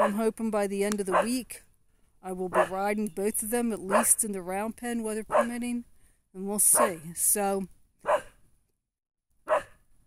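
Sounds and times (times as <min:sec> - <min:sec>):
puppy barking: 0:02.5 - 0:02.7, 0:05.3 - 0:05.6, 0:08.0 - 0:08.4, 0:09.5 - 0:09.8.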